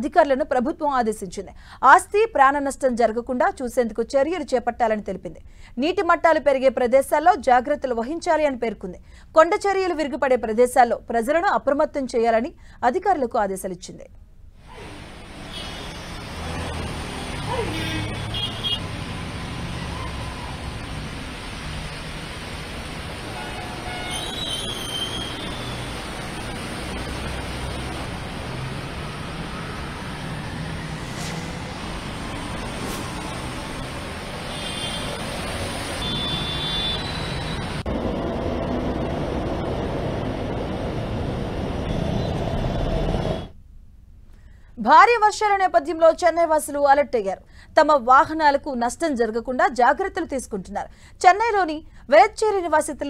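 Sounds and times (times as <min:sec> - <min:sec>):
traffic driving through water: 0:14.9 - 0:41.9
car horn honks: 0:15.5 - 0:16.0, 0:17.6 - 0:18.9, 0:34.5 - 0:35.2, 0:36.0 - 0:37.6.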